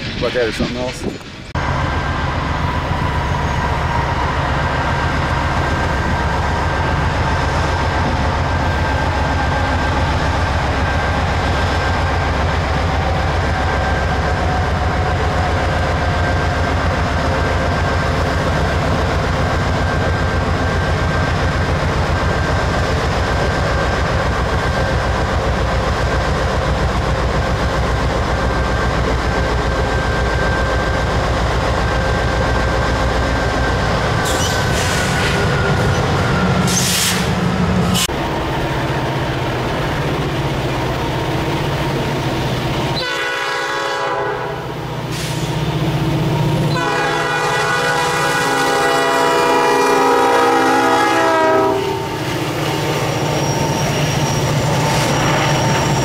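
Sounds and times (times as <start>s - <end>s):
train wheels clattering on rails: 0.0s - 1.6s
diesel locomotive engine rumble: 0.0s - 56.0s.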